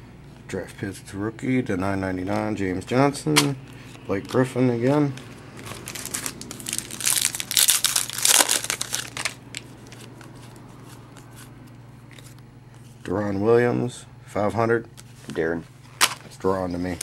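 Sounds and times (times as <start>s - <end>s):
low steady hum: 0.0s - 17.0s
cards clicking and rustling: 4.2s - 11.5s, 16.0s - 16.3s
wrapper crinkling: 5.5s - 10.3s.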